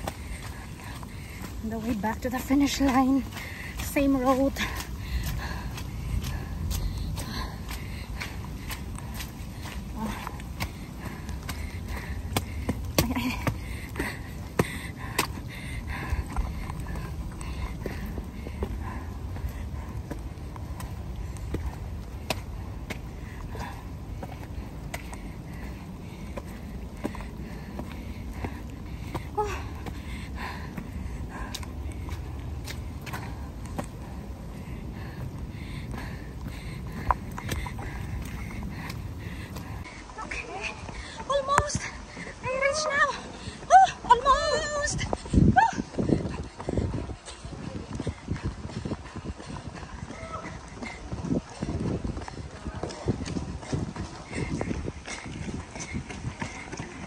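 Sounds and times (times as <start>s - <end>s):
wind on microphone: 0.0s - 40.2s, 43.9s - 57.0s
running footsteps: 0.0s - 57.0s.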